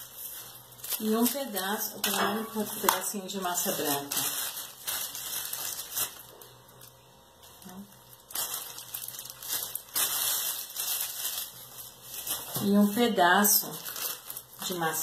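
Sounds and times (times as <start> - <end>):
plastic bag crinkling: 0.0 - 15.0.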